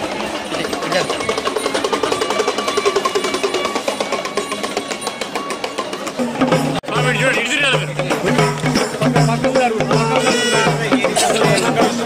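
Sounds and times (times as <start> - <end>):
fast steady drumming: 0.0 - 12.0.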